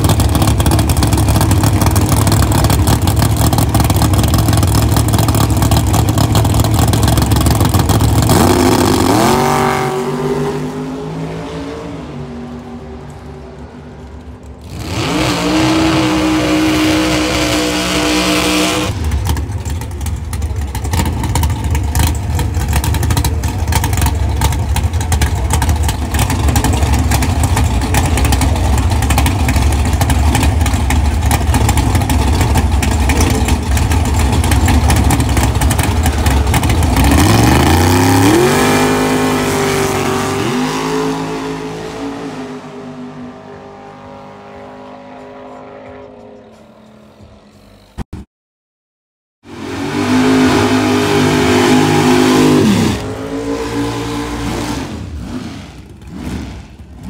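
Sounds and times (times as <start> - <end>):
drag race car engines roaring: 0.0 - 48.0, 49.5 - 57.0.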